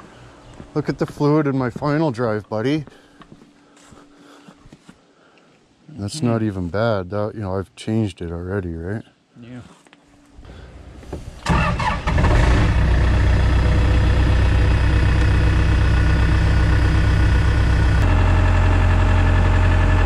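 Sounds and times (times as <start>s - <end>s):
diesel engine cranking and running: 11.4s - 20.0s.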